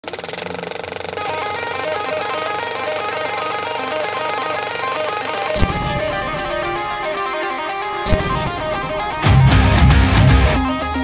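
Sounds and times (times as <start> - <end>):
film projector clattering: 0.0 - 9.3
melody of short notes: 1.2 - 11.0.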